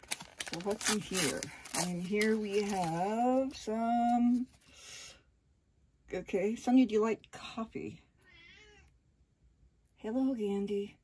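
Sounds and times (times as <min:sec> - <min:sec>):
cat meowing: 0:08.2 - 0:08.9.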